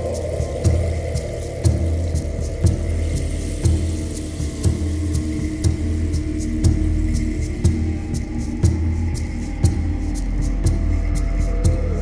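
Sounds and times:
slow ambient drone music: 0:00.0 - 0:12.0.

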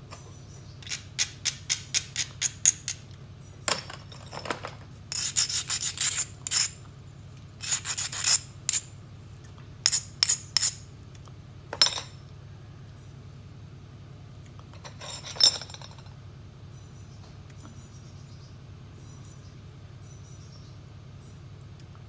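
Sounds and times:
abrader scratching stone edge: 0:05.1 - 0:06.8, 0:07.6 - 0:08.9, 0:09.9 - 0:10.8.

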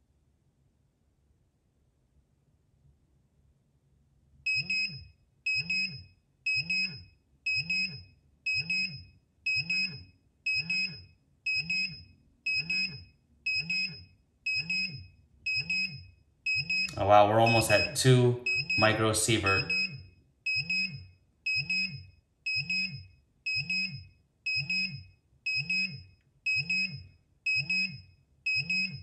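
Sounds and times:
geiger counter alarm beeping: 0:04.5 - 0:29.0.

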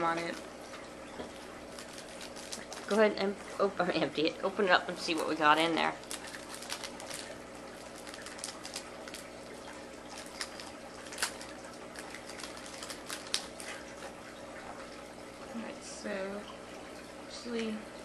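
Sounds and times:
faint room hum: 0:00.0 - 0:18.0
plastic package crinkling: 0:01.2 - 0:03.1, 0:04.9 - 0:14.2.

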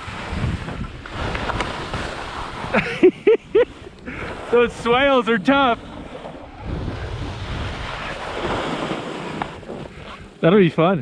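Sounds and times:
wind on microphone: 0:00.0 - 0:05.2, 0:05.8 - 0:10.4
skis hissing over snow: 0:00.0 - 0:10.6.

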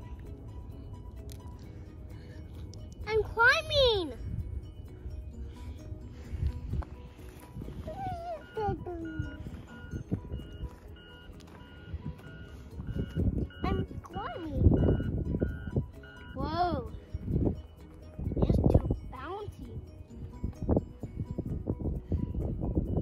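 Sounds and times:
two-pitch electronic beeps: 0:07.9 - 0:16.5.

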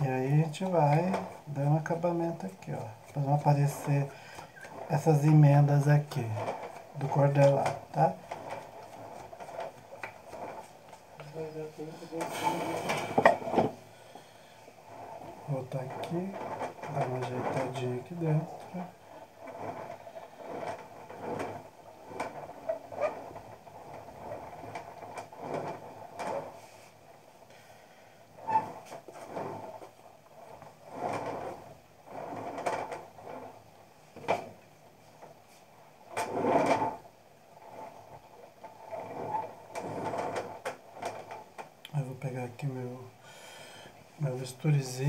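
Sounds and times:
tool scraping wet clay: 0:00.0 - 0:45.0.

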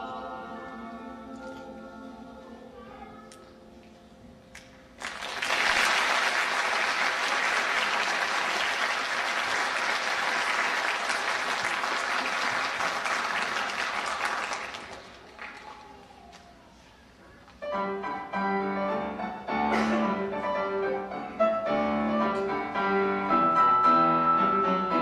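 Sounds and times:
audience applauding: 0:05.0 - 0:16.1.

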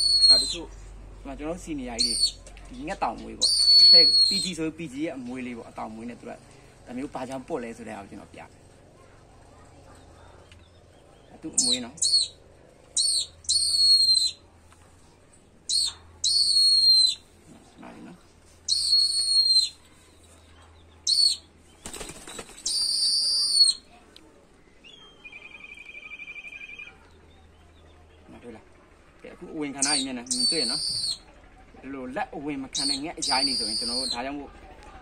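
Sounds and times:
falcon high-pitched calls: 0:03.4 - 0:04.5, 0:11.6 - 0:12.4, 0:13.0 - 0:14.4, 0:15.7 - 0:17.2, 0:18.7 - 0:19.8, 0:29.8 - 0:31.3, 0:32.7 - 0:34.2
wing flapping: 0:21.1 - 0:23.8.

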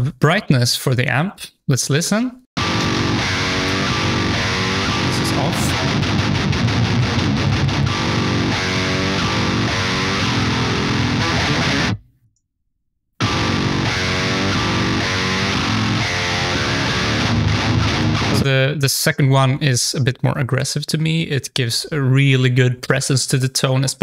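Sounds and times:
distorted electric guitar riff: 0:02.6 - 0:12.0, 0:13.2 - 0:18.6.

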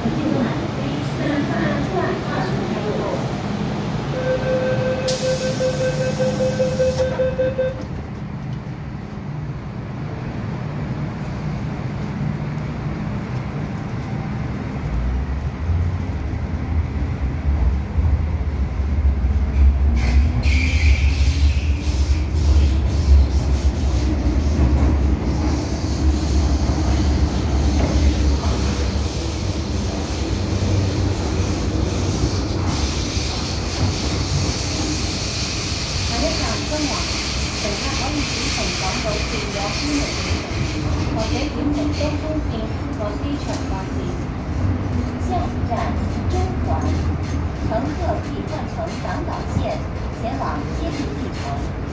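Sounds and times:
low train rumble: 0:00.0 - 0:51.9
wheels hissing on rail: 0:05.1 - 0:07.1, 0:19.4 - 0:43.4.

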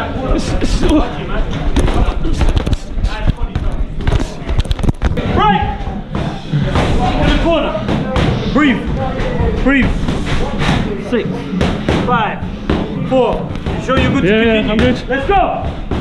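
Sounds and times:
voices in gym: 0:00.0 - 0:16.0.

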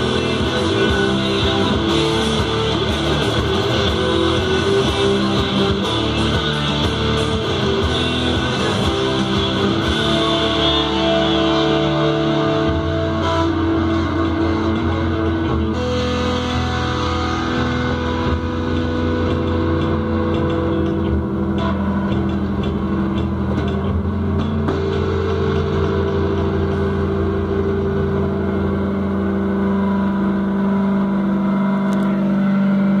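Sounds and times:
electric guitar feedback drone: 0:00.0 - 0:33.0.

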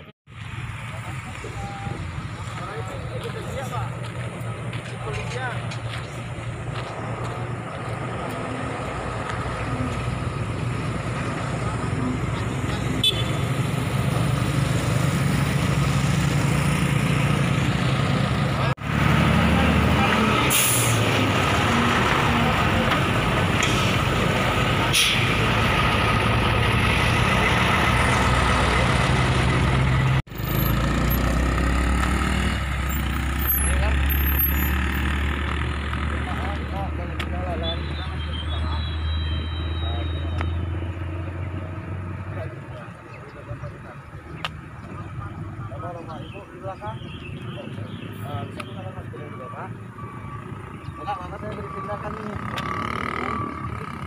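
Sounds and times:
heavy diesel truck passing: 0:00.0 - 0:46.8, 0:47.5 - 0:54.0
vehicle engines running: 0:00.0 - 0:54.0.

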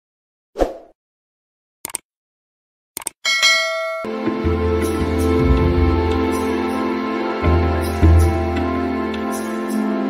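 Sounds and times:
bright bell ding: 0:03.2 - 0:04.1.

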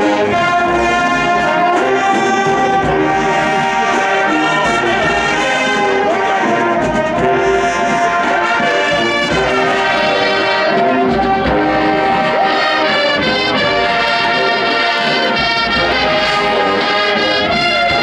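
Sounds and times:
marching band brass chords: 0:00.0 - 0:18.0.

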